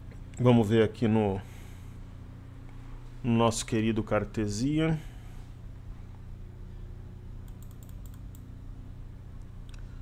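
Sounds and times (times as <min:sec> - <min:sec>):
steady low hum: 0:00.0 - 0:10.0
computer keyboard typing: 0:07.4 - 0:08.4.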